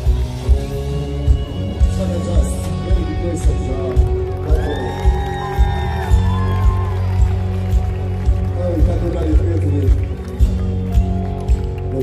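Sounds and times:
live rock band: 0.0s - 12.0s.

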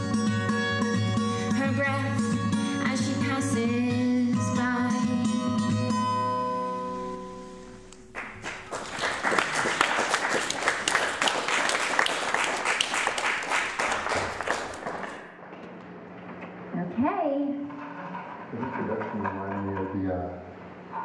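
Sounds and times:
acoustic guitar chord ringing: 4.3s - 7.9s
audience applauding: 8.1s - 15.4s.

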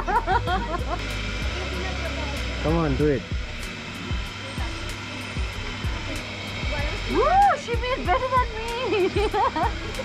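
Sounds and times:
potter's wheel humming: 0.0s - 10.0s.

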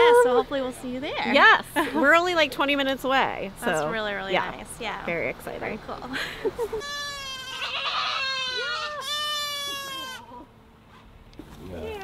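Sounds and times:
goat bleating: 6.8s - 10.5s.

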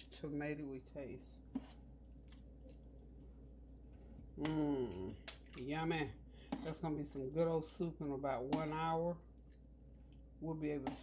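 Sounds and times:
spoon stirring thick soup: 1.4s - 11.0s.

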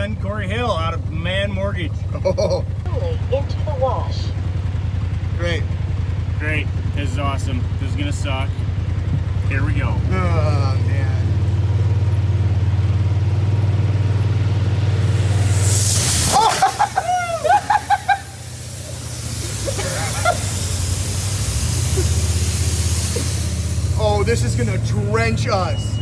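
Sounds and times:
engine idling: 0.0s - 26.0s
water jets spraying with loud hiss: 14.6s - 26.0s
people laughing and shouting: 16.3s - 18.4s, 19.4s - 20.6s.

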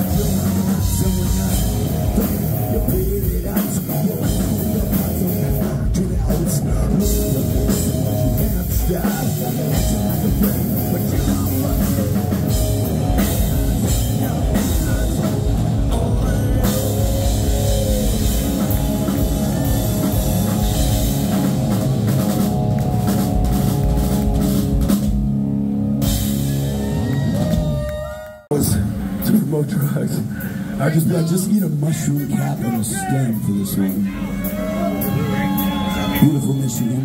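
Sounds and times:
electric guitar: 0.0s - 29.2s
drum kit: 0.0s - 30.1s
bass guitar: 0.0s - 31.0s, 31.7s - 37.0s.

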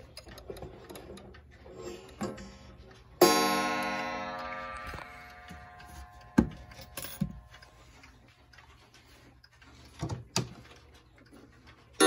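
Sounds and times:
clock ticks and knocks: 0.0s - 12.0s
clock chime rods ringing: 3.2s - 7.9s.

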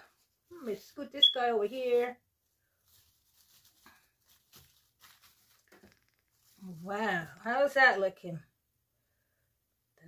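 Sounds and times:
rustles of artificial greenery: 0.0s - 8.3s
person speaking: 6.5s - 8.4s.

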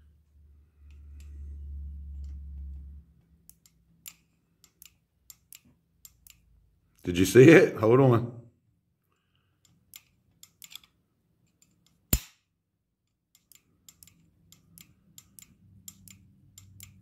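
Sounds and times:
sharp clicks and snaps: 2.1s - 6.6s, 13.1s - 17.0s.

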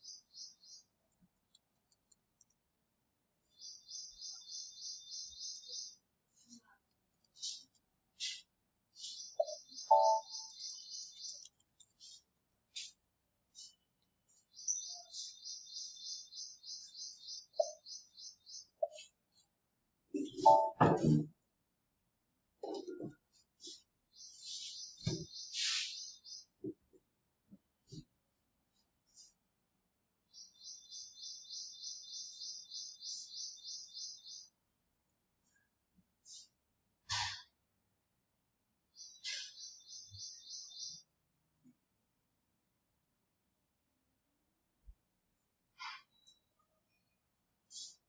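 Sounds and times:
birds twittering: 0.0s - 1.0s, 3.5s - 6.0s, 7.4s - 13.0s, 13.6s - 19.1s, 20.2s - 20.8s, 23.6s - 26.6s, 30.3s - 34.5s, 38.9s - 41.1s
bird calls: 7.4s - 13.0s, 14.4s - 19.1s, 20.1s - 20.8s, 23.6s - 26.6s, 39.0s - 41.1s
bird trilling: 9.4s - 11.4s.

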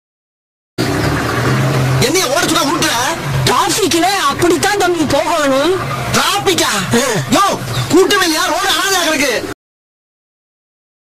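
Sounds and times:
car engine running: 0.8s - 9.5s
man talking loudly: 2.0s - 9.6s.

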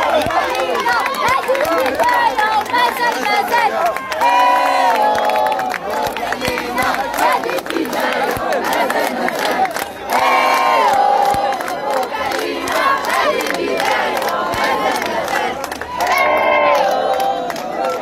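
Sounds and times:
crowd shouting and cheering: 0.0s - 18.0s.

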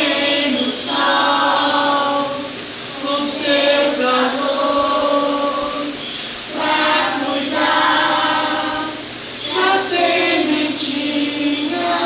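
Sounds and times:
children singing in unison: 0.0s - 12.0s.

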